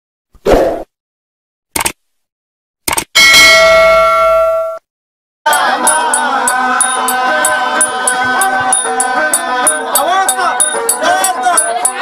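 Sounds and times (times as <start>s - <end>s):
bell-like chime: 5.5s - 12.0s
music with hand drum: 5.5s - 12.0s.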